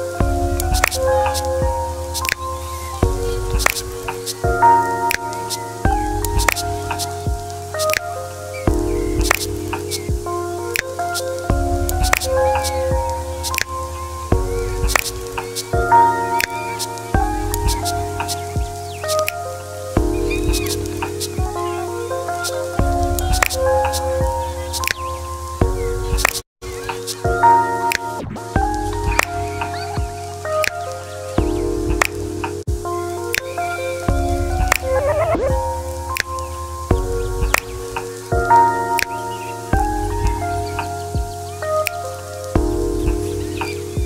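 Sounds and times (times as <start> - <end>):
bass line: 0.0 - 4.7, 5.9 - 7.7, 8.7 - 10.8, 11.5 - 16.0, 17.2 - 18.9, 20.0 - 22.1, 22.8 - 26.4, 28.6 - 30.3, 31.4 - 33.4, 34.0 - 38.6, 39.7 - 41.4, 42.6 - 44.0
held sampled chords: 0.0 - 44.0
hip-hop beat from sampler: 0.1 - 8.1, 8.7 - 44.0
crisp hi-hat and snare hits: 0.2 - 8.1, 8.7 - 19.4, 31.4 - 42.0
deep kick drum: 1.6 - 1.8, 3.0 - 3.8, 7.3 - 7.5, 11.5 - 12.3, 12.9 - 13.1, 14.3 - 15.0, 18.6 - 18.8, 20.0 - 20.7, 21.4 - 21.6, 22.8 - 23.5, 25.6 - 26.2, 34.1 - 34.8, 35.4 - 35.7, 36.9 - 37.6, 42.6 - 43.3.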